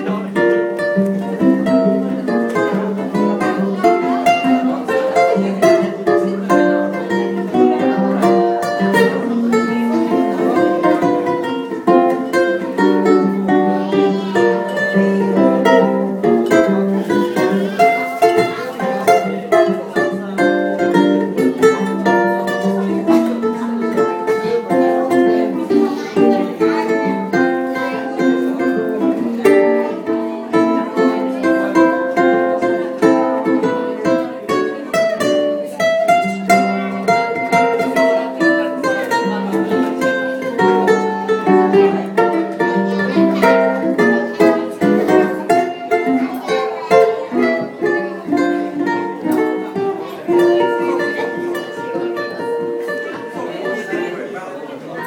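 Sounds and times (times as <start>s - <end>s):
guitar accompaniment: 0.0s - 55.0s
plucked ukulele melody: 0.0s - 55.0s.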